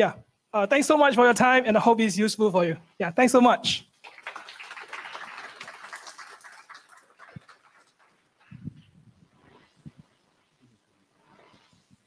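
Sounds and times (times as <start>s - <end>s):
audience applause: 4.0s - 8.5s.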